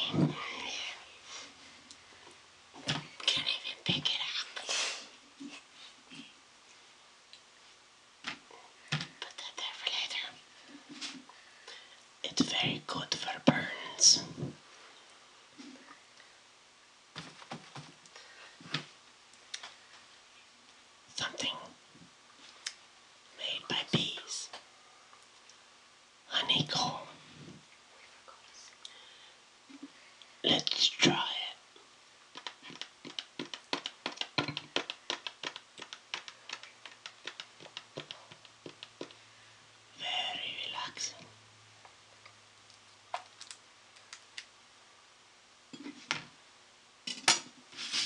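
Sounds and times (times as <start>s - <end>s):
man whispering: 0.0s - 1.1s, 3.2s - 4.6s, 9.2s - 10.4s, 12.2s - 14.4s, 21.1s - 21.8s, 23.4s - 24.6s, 26.3s - 27.3s, 30.4s - 31.6s, 40.0s - 41.3s
sticky eating clicks: 32.3s - 39.1s.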